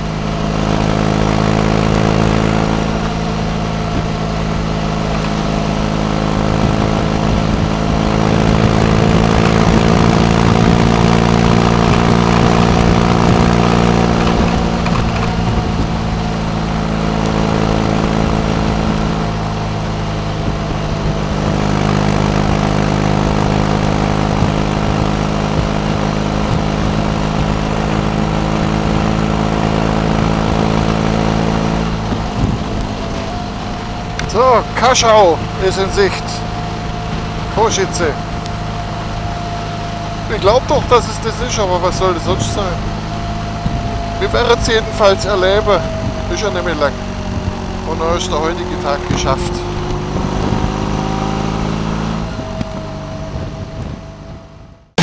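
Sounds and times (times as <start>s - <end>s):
motorcycle engine cruising: 0.0s - 55.0s
wind rush on microphone: 0.0s - 55.0s.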